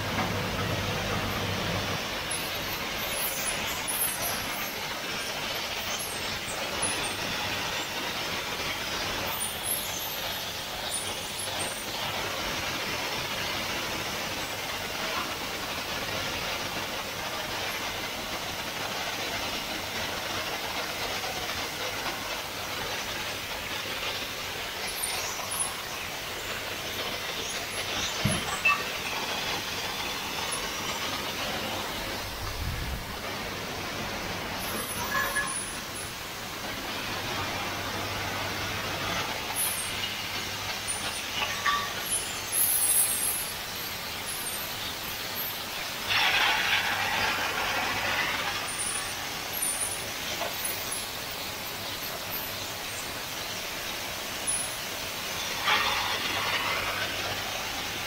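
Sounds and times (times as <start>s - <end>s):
gas torch flames hissing: 0.0s - 58.0s.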